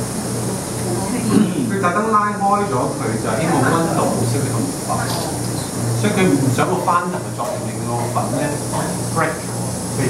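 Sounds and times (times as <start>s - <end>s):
steady low hum: 0.0s - 10.0s
people talking: 0.2s - 9.5s.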